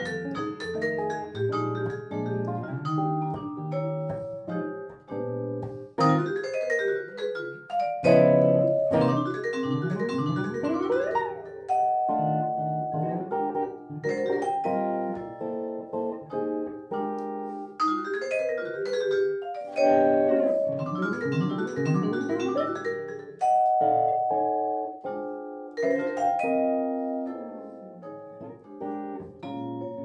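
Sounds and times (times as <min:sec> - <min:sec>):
electric guitar jazz: 0:00.0 - 0:30.0
vibraphone notes: 0:00.0 - 0:30.0.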